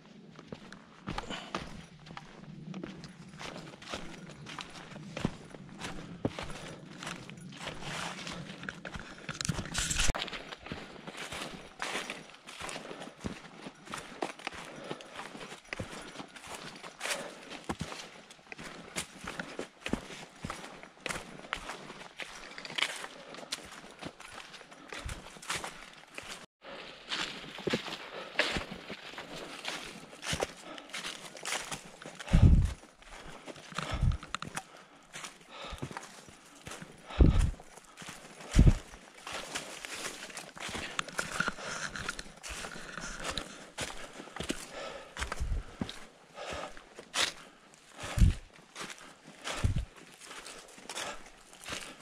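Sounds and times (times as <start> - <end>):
footsteps through dry leaves: 2.8 - 34.3, 35.1 - 52.0.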